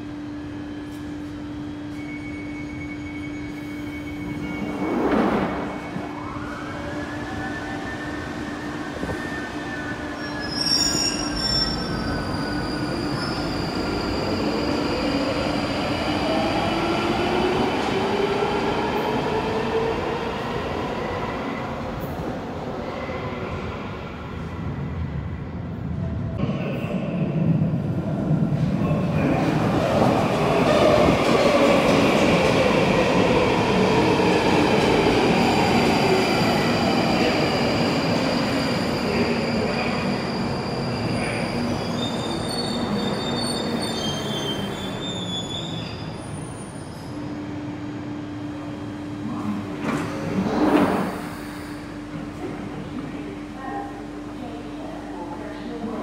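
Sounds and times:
rail and wheel noise: 0.0 - 56.0
train braking to a stop: 0.4 - 24.5, 29.0 - 47.4.

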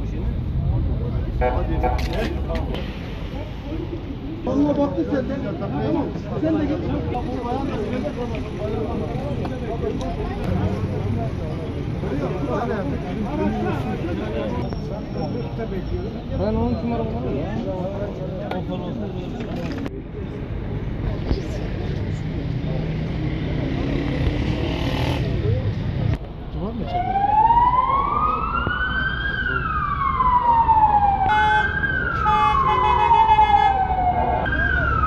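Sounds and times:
crowd murmur on street: 0.0 - 35.0
emergency siren wailing: 26.8 - 35.0.

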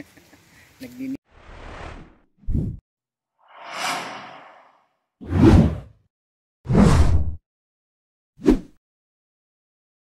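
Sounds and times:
whoosh sound effects: 3.4 - 5.8.

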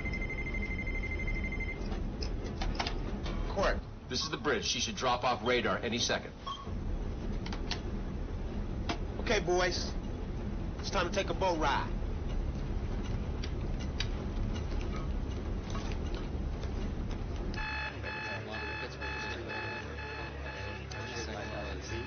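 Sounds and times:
electronic alarm beeping: 0.0 - 1.9, 17.6 - 22.0.

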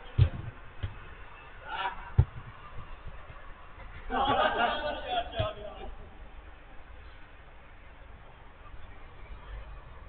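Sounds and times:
football kick thud: 0.1 - 1.0, 2.1 - 4.4.

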